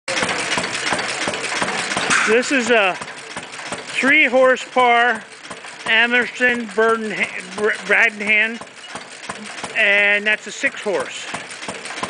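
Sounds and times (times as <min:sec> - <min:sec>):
stationary gas engines running: 0:00.1 - 0:12.0.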